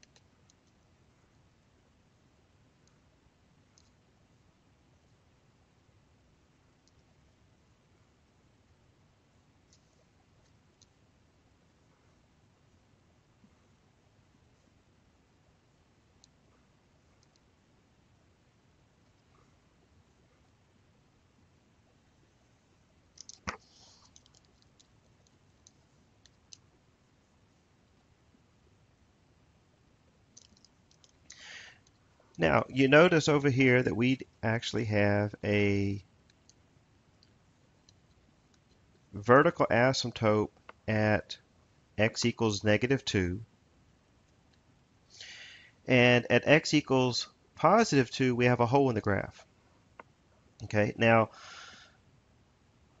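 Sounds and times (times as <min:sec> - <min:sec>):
faint clicks: 0:00.0 - 0:00.8, 0:03.7 - 0:04.0, 0:06.8 - 0:07.1, 0:09.6 - 0:11.0, 0:16.2 - 0:17.5, 0:23.1 - 0:26.7, 0:30.3 - 0:32.4.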